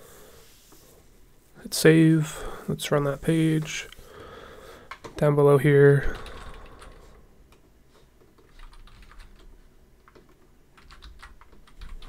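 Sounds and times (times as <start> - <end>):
typing on computer keyboard: 6.1 - 7.0, 8.4 - 12.0.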